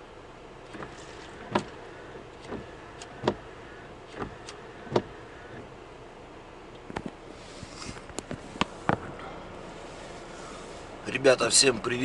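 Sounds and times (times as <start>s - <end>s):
low hum: 0.0s - 11.1s
windscreen wipers knocking: 0.7s - 5.7s, 8.2s - 9.2s.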